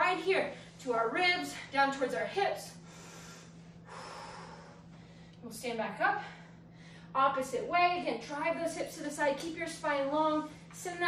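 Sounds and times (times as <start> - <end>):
faint steady hum: 0.0 - 11.0
woman breathing: 2.7 - 5.4, 6.1 - 7.2.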